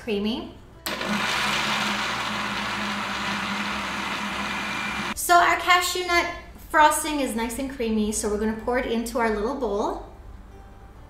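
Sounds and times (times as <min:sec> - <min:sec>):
blender running: 0:00.9 - 0:05.2.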